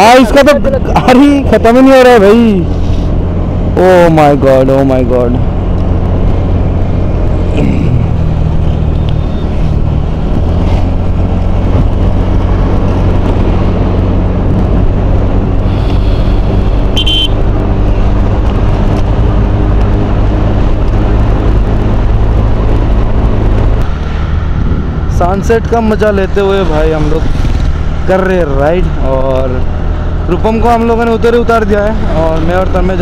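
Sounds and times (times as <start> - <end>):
motorcycle engine drone: 0.0 - 33.0
wind rumble on microphone: 0.7 - 33.0.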